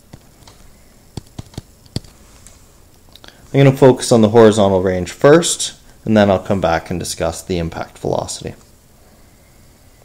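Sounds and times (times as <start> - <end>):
stylus tapping on a tablet screen: 0.1 - 2.2.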